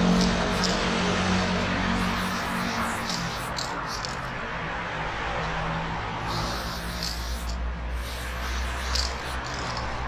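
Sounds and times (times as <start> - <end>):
spray paint can hissing: 0.0 - 4.3, 6.2 - 10.0.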